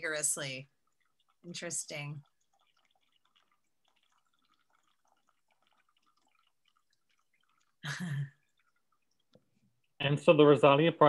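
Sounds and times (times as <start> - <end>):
water trickling into funnel: 0.0 - 10.8
small water drips: 0.0 - 11.0.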